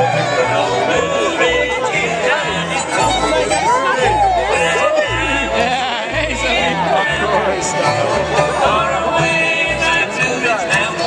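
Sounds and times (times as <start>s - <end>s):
bluegrass band playing: 0.0s - 11.0s
fiddle melody: 0.0s - 11.0s.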